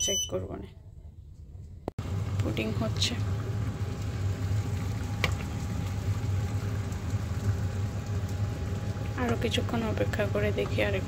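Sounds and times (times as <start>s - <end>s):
pot steaming with hum and hiss: 2.0s - 11.0s.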